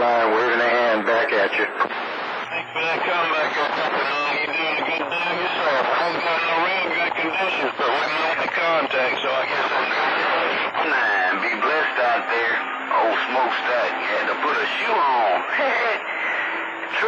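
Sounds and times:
voices talking through radio: 0:00.0 - 0:17.0.

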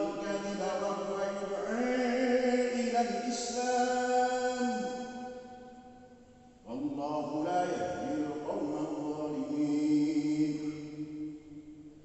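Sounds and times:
man chanting over loudspeaker: 0:00.0 - 0:05.4, 0:06.2 - 0:12.0.

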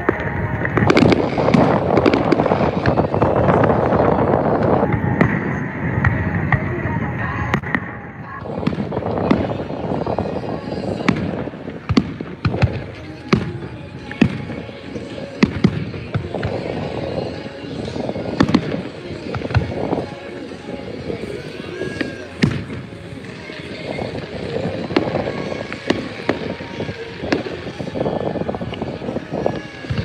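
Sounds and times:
rushing background noise: 0:00.0 - 0:30.0.

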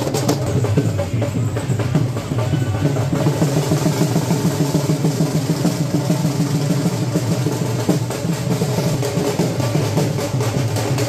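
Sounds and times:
music with fast drumming: 0:00.0 - 0:11.0.

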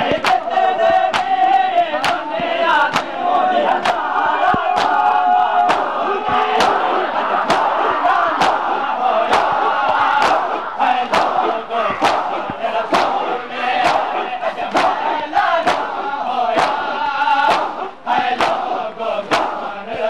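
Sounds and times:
crowd beating chests: 0:00.0 - 0:20.0
men chanting and shouting: 0:00.0 - 0:20.0.

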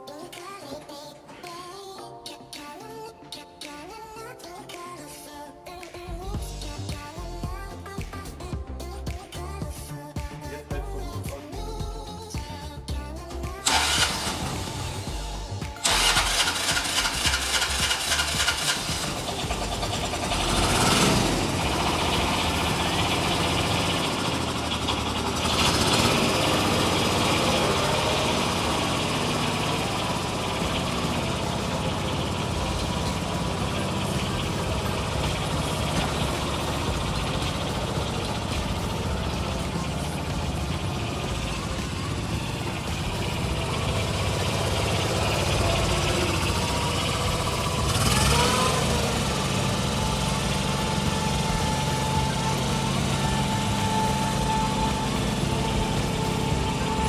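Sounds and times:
tractor diesel engine running: 0:10.7 - 0:57.0.

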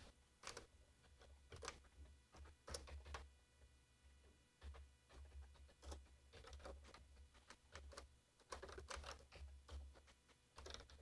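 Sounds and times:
keyboard typing: 0:00.4 - 0:03.3, 0:04.6 - 0:11.0.

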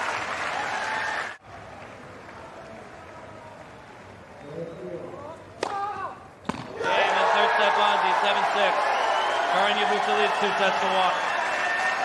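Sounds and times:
crowd cheering: 0:00.0 - 0:04.1, 0:06.7 - 0:12.0
player shouting: 0:05.8 - 0:08.8
tennis ball hit: 0:06.4 - 0:06.8.

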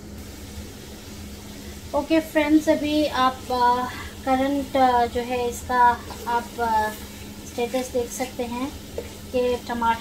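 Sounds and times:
faint steady hum: 0:00.0 - 0:10.0
gas burner rumble and hiss: 0:00.0 - 0:10.0
sauce simmering: 0:00.0 - 0:10.0.

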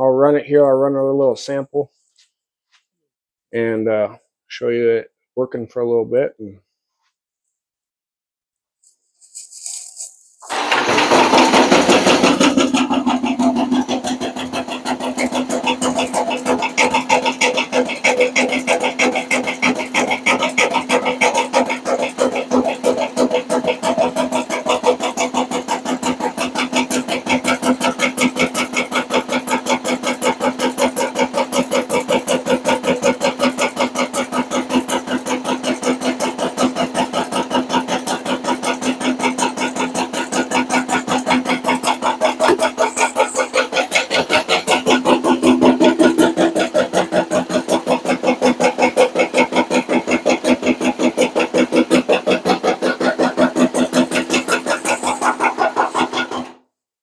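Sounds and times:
drill motor humming: 0:10.4 - 0:56.5.

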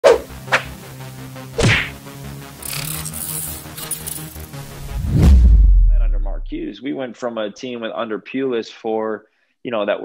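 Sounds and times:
sharp whack hits: 0:01.6 - 0:02.0.

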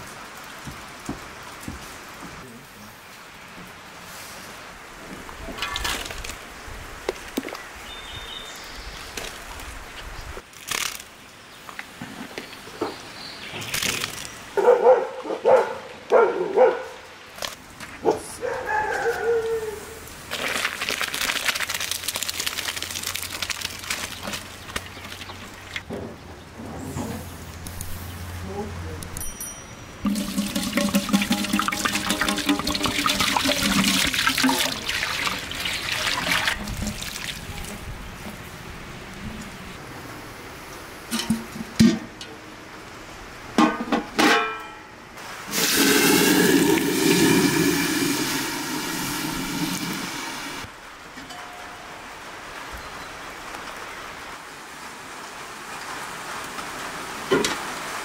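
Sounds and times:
water pouring into metal bowl: 0:30.0 - 0:37.8, 0:45.5 - 0:50.7.

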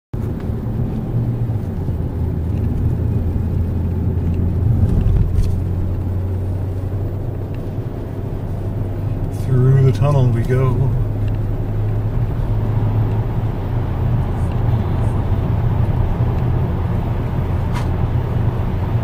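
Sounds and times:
car driving interior drone: 0:00.2 - 0:19.0.

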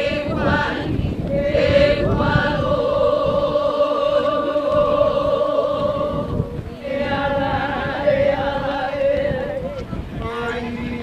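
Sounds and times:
voices chanting together: 0:00.0 - 0:11.0
woman holding long chant notes: 0:00.0 - 0:11.0.

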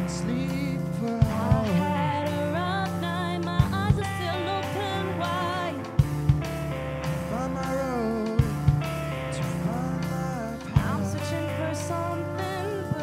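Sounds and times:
person singing: 0:00.0 - 0:06.0, 0:07.1 - 0:13.0
rock band playing live: 0:00.0 - 0:13.0.

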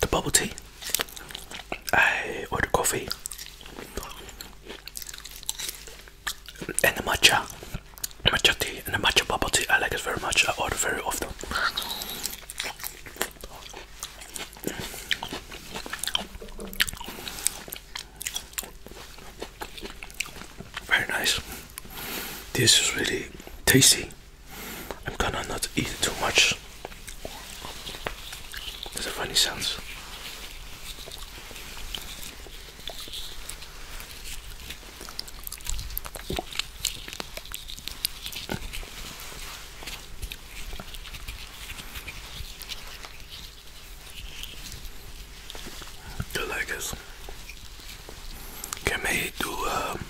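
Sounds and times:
wet chewing sounds: 0:00.0 - 0:50.0.

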